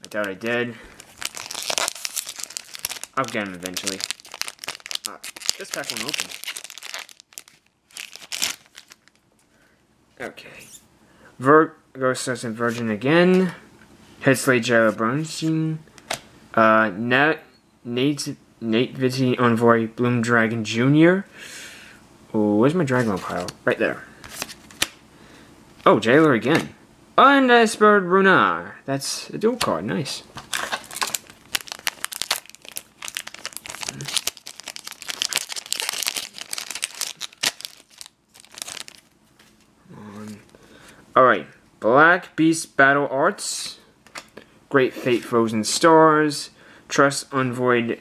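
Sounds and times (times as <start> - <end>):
man reading aloud: 0.0 - 0.9, 3.2 - 4.1, 5.0 - 6.5, 10.2 - 10.7, 11.4 - 15.9, 16.6 - 21.3, 22.3 - 24.1, 25.8 - 30.3, 39.9 - 40.5, 41.2 - 43.9, 44.7 - 48.0
foil wrapper tearing and crinkling: 1.0 - 9.2, 30.4 - 39.1.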